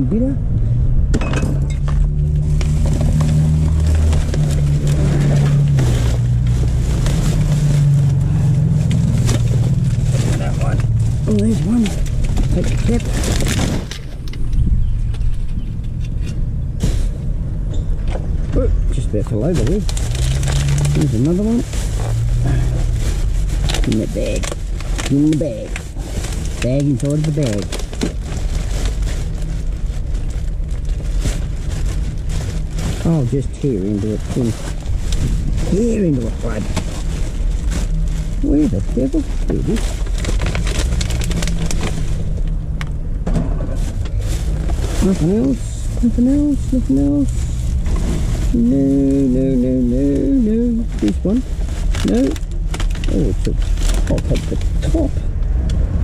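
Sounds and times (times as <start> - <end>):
steady low rumble: 0.0 - 56.0
plastic bags rustling: 1.6 - 14.3, 18.9 - 55.4.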